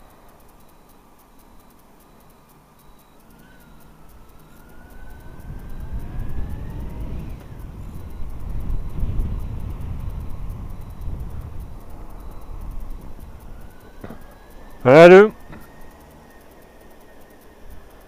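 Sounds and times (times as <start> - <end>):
motorcycle accelerating: 2.4 - 18.0
wind rumble on microphone: 4.9 - 14.8.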